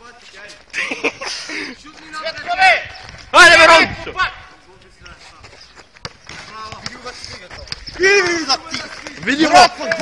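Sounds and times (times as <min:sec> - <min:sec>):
distant players shouting: 0:01.8 - 0:04.6, 0:07.8 - 0:10.0
football thudding on asphalt: 0:06.0 - 0:10.0.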